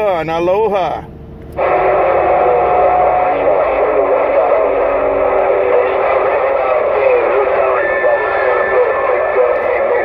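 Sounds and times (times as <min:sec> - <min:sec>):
garbled wavering radio voices: 0:00.0 - 0:10.0
radio static: 0:01.5 - 0:10.0.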